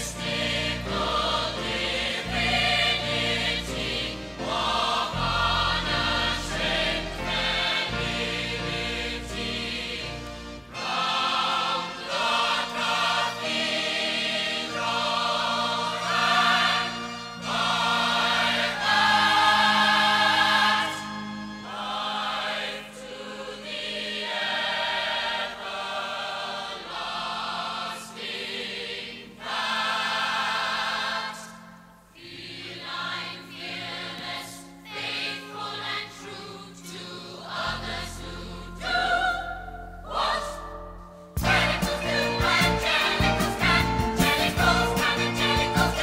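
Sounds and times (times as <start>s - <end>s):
chorus singing a show tune: 0.0s - 31.6s, 32.2s - 40.8s, 41.4s - 46.0s
instrumental backing: 37.5s - 46.0s.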